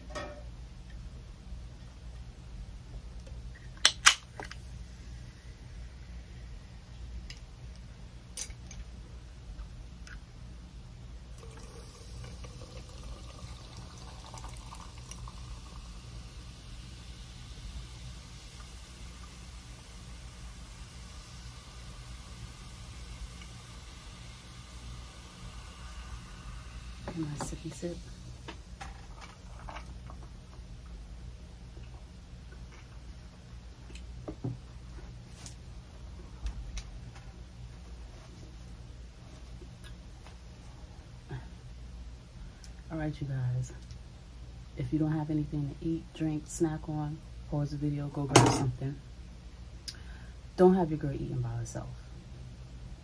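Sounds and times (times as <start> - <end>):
can snapping open: 3.8 - 4.6
fizzy drink poured over ice: 11.3 - 16.1.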